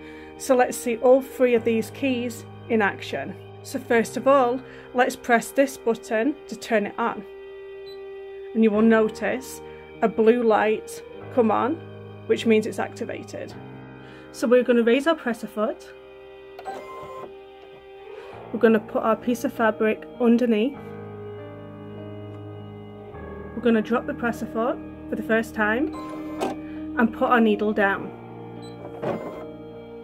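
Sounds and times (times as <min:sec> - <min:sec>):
soft background music: 0:00.0 - 0:30.0
sewing machine mechanical whir: 0:16.6 - 0:17.3.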